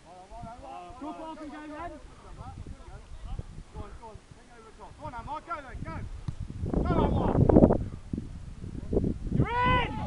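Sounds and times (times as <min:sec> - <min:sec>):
microphone noise rumble: 0:04.9 - 0:10.0
men shouting: 0:09.4 - 0:10.0.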